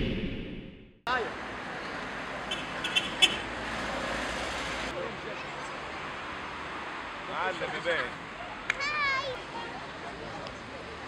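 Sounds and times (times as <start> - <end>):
road traffic: 1.1 - 11.0
crowd voices: 7.4 - 11.0.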